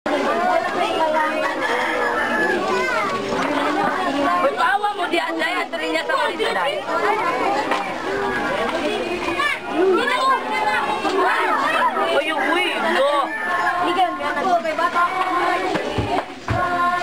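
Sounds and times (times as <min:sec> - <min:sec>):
children chattering: 0:00.1 - 0:17.0.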